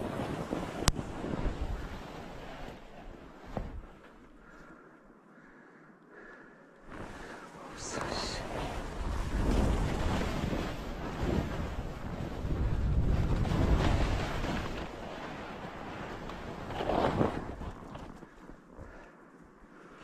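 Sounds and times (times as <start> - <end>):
wind buffeting microphone: 0.0 - 4.0, 7.0 - 19.0
skis scraping through snow: 0.0 - 4.3, 6.9 - 18.4.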